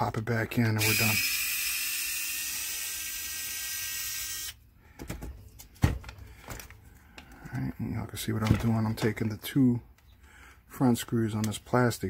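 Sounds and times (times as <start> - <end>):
electric screwdriver running: 0.8 - 4.6.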